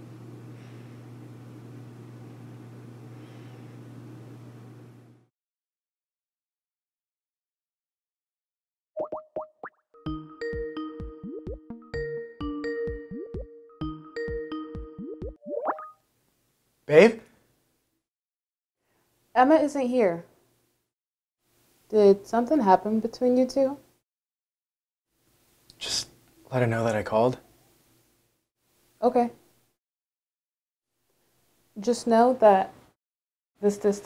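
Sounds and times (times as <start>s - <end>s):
plucky electronic plop tones: 9.0s - 16.0s.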